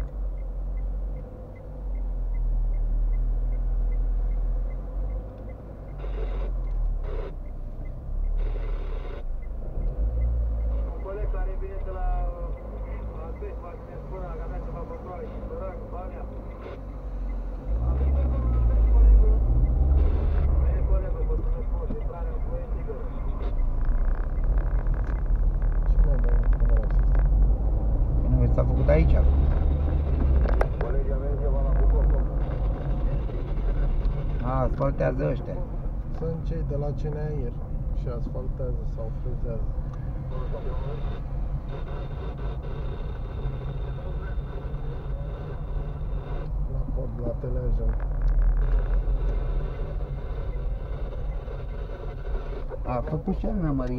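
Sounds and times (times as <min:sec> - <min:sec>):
car engine accelerating: 0:00.0 - 0:53.9.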